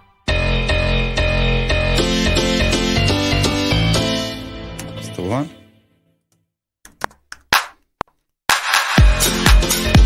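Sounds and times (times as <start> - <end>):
house music with kick beat: 8.6 - 10.0.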